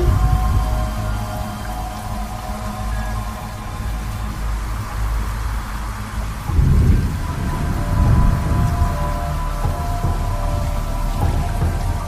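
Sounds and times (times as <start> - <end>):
steady rain: 0.0 - 12.0
thunder rumbling: 0.0 - 12.0.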